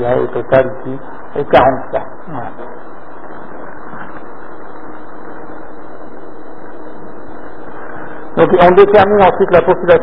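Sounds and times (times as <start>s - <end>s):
background hiss: 0.0s - 10.0s
faint steady hum: 0.0s - 10.0s.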